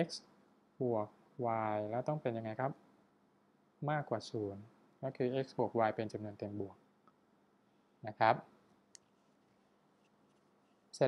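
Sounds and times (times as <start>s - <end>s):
man speaking: 0.0s - 0.2s, 0.8s - 2.8s, 3.8s - 6.8s, 8.0s - 8.5s
faint steady hiss: 0.0s - 11.0s.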